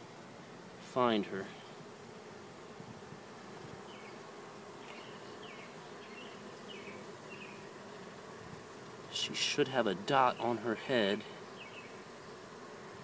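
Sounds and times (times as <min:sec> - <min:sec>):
bees buzzing: 0:00.0 - 0:13.0.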